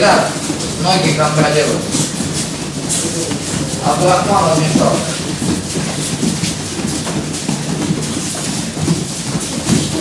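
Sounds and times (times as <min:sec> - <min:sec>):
faint murmur of voices: 0:00.0 - 0:05.4
bare feet shuffling on mats: 0:00.0 - 0:10.0.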